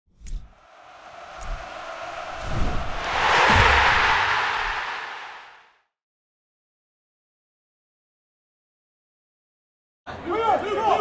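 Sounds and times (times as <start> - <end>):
whoosh effect: 0.5 - 5.8
low thumps: 0.9 - 5.4.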